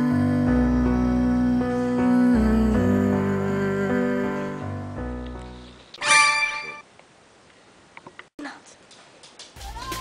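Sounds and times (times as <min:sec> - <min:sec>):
music: 0:00.0 - 0:05.8, 0:09.6 - 0:10.0.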